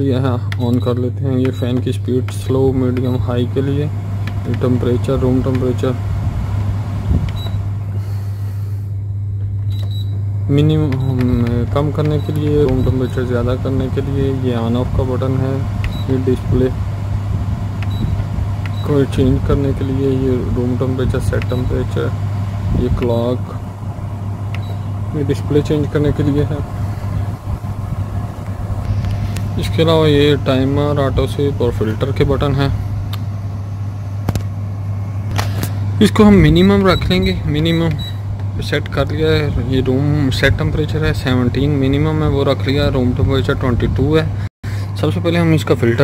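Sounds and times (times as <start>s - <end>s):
air conditioner humming: 0.0s - 46.0s
control panel click: 0.5s - 3.2s, 10.8s - 13.2s, 17.8s - 18.9s, 21.4s - 21.8s, 24.5s - 24.8s.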